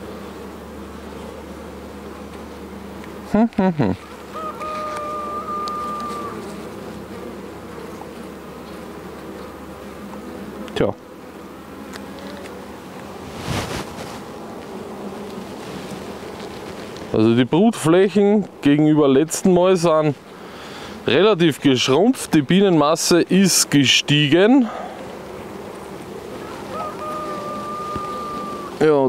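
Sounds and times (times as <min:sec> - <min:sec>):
honeybee colony humming: 0:00.0 - 0:29.0.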